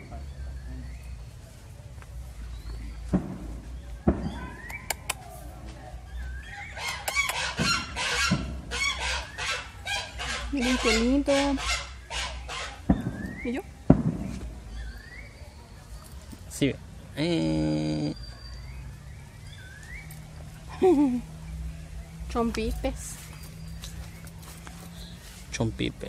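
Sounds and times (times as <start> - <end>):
geese honking: 6.5 - 13.6.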